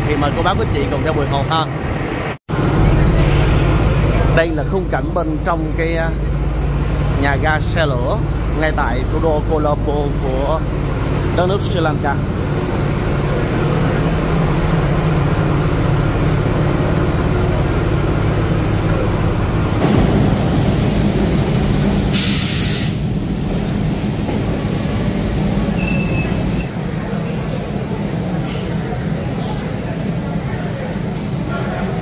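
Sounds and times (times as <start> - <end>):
locomotive engine drone: 0.0 - 32.0
burst of hissing air: 22.1 - 23.1.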